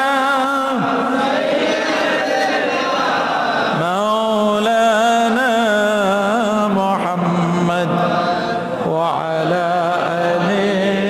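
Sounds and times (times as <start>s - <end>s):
man chanting into a microphone: 0.0s - 1.2s, 3.7s - 11.0s.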